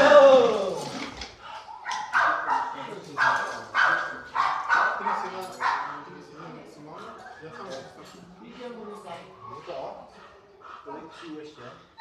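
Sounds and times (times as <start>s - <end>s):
dog barking: 1.7s - 6.1s.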